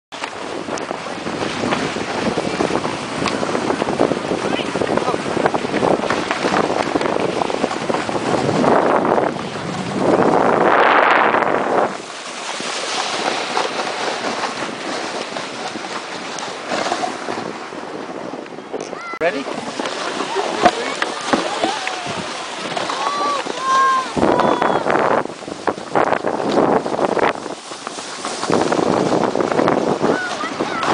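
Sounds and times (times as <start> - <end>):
sled skis scraping over snow: 10.1 - 17.5, 19.5 - 24.3, 25.6 - 30.9.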